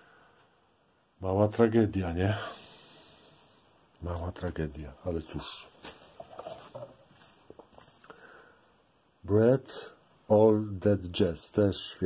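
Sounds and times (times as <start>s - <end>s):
cardboard record sleeves rustling: 4.0s - 8.0s.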